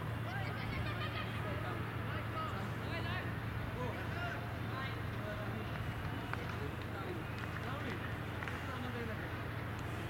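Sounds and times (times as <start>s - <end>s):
low hum of outdoor noise: 0.0s - 10.0s.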